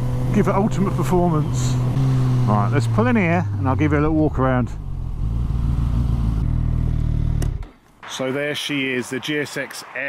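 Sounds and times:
motorcycle engine at low revs: 0:00.0 - 0:07.7
wind and road noise: 0:00.0 - 0:10.0.

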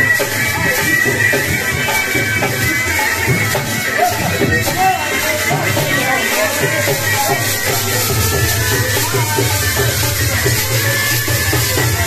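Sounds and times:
bagpipes playing: 0:00.0 - 0:12.0.

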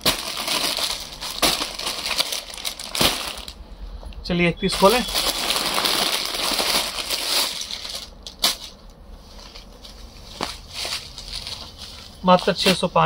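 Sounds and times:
plastic packet crinkling: 0:00.0 - 0:03.6, 0:04.7 - 0:08.8, 0:10.4 - 0:13.0.

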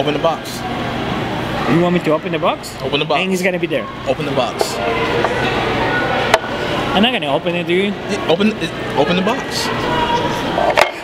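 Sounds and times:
hubbub of a busy hall: 0:00.0 - 0:11.0.

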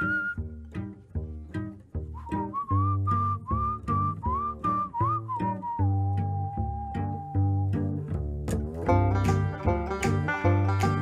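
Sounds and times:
whistled melody: 0:00.0 - 0:00.9, 0:01.9 - 0:08.1
plucked bass line: 0:00.0 - 0:11.0.

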